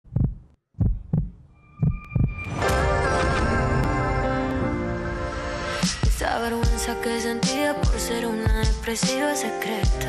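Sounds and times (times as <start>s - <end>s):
heartbeat thumps: 0.0s - 2.4s.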